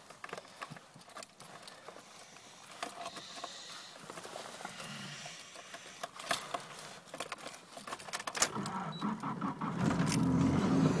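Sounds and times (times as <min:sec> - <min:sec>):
car engine running: 0:08.9 - 0:11.0.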